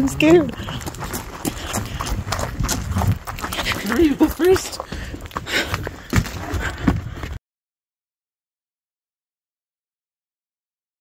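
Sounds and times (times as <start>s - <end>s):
running footsteps: 0.0s - 7.4s.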